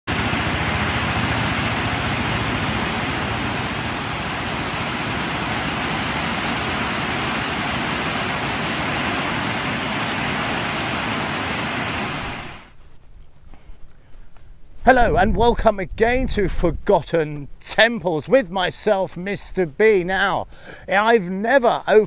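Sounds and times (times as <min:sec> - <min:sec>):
heavy rain on wet ground: 0:00.1 - 0:12.7.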